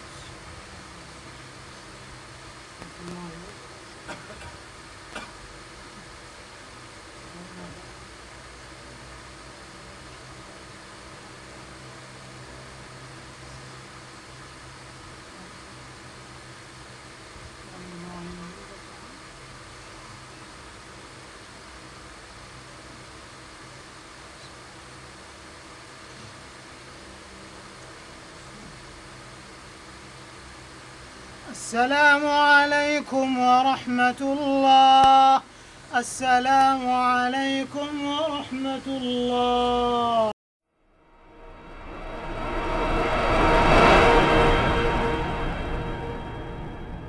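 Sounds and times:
electric fan hissing: 0.0s - 40.3s, 40.9s - 47.0s
faint low hum: 0.0s - 47.0s
whooshing swell: 40.9s - 47.0s.

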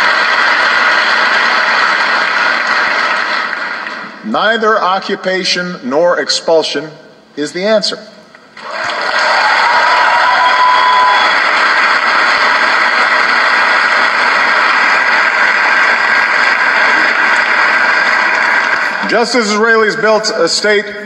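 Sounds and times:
large audience applauding: 0.0s - 4.2s, 8.6s - 20.3s.

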